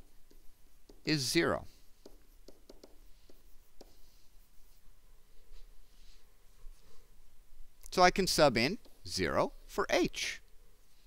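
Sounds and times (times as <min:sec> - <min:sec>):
stylus tapping on tablet screen: 0:00.0 - 0:01.1, 0:02.0 - 0:04.1.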